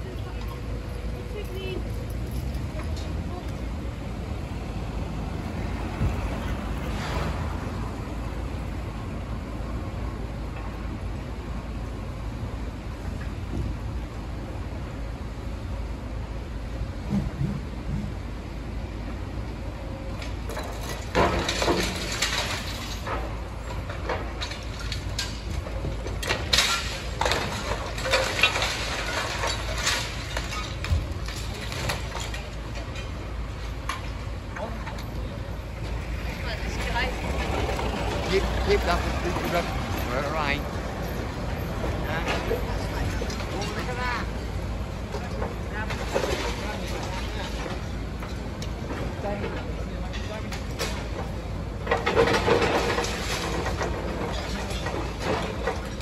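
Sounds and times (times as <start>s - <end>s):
people's voices: 0.0s - 6.9s, 34.4s - 48.1s
demolition site rumble: 0.0s - 56.0s
excavator working: 0.0s - 56.0s.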